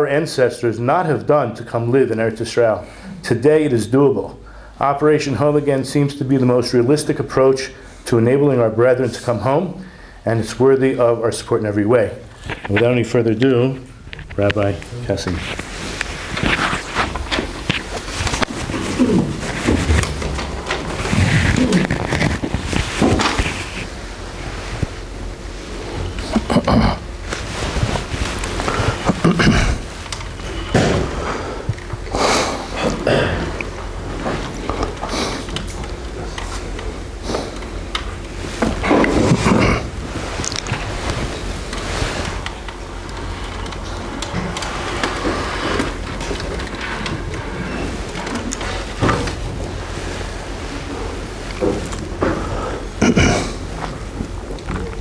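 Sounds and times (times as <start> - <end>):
steady low hum: 0.0 - 55.0
microphone rubbing: 13.8 - 55.0.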